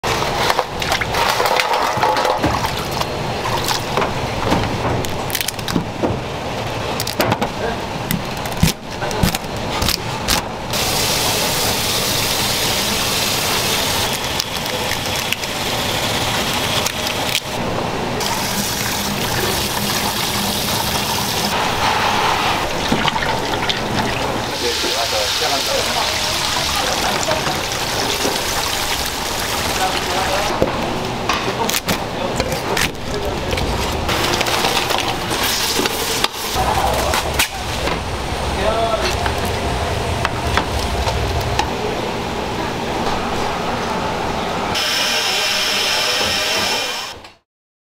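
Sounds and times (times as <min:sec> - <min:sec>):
oil sizzling in deep fryer: 0:10.7 - 0:17.3, 0:18.2 - 0:23.6, 0:24.5 - 0:30.5.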